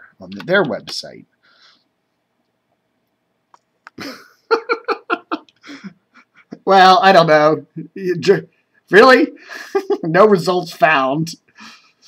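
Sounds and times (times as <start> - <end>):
man laughing: 4.0 - 6.8, 9.4 - 10.2.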